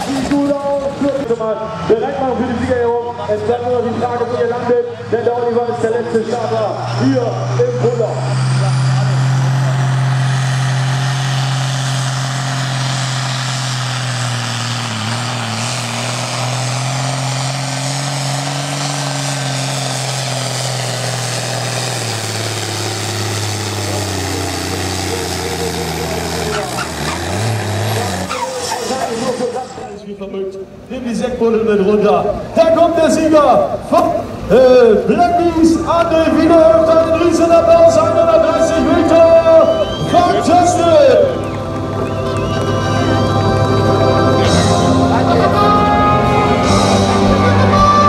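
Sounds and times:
diesel tractor engine straining: 0.0s - 48.0s.

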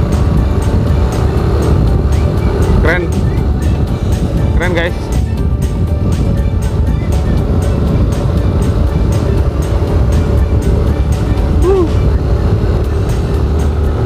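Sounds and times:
vehicle rumble: 0.0s - 14.0s
wind on microphone: 0.0s - 14.0s.

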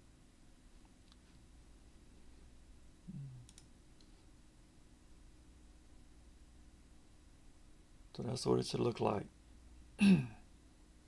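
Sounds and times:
low falling hum: 3.0s - 3.5s
computer mouse clicks: 3.4s - 4.2s.

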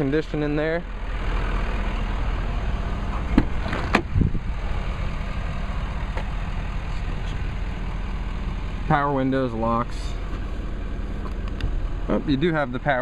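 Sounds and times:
diesel engine idling: 0.0s - 13.0s
truck door opening: 3.1s - 4.4s.

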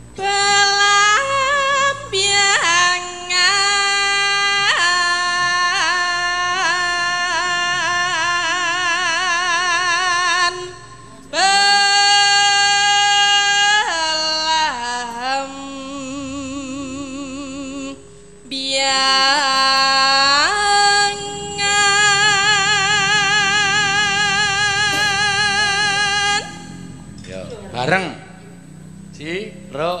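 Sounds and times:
woman singing long vibrato note: 0.2s - 27.8s
woman singing a held note: 13.8s - 26.8s.

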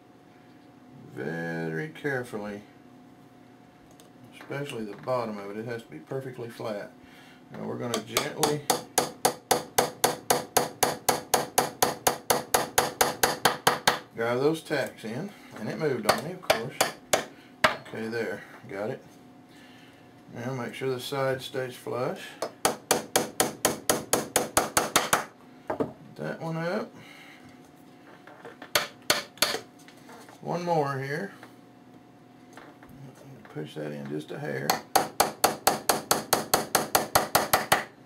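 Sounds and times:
hammer tapping nails into wood: 22.6s - 25.3s, 34.7s - 37.9s.

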